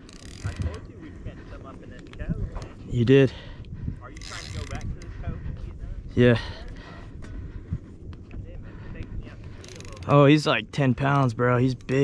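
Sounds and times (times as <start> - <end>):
fishing reel ticking rapidly: 0.0 - 0.8, 4.1 - 5.1, 9.6 - 10.3
low wind: 0.0 - 12.0.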